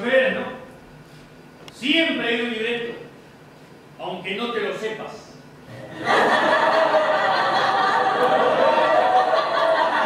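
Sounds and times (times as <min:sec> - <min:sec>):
audience laughing: 0:05.7 - 0:10.0.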